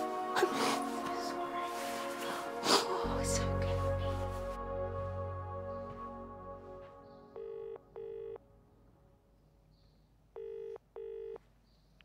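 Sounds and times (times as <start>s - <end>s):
soft music: 0.0s - 10.0s
double-ring telephone ringing tone: 7.4s - 8.4s, 10.4s - 11.4s.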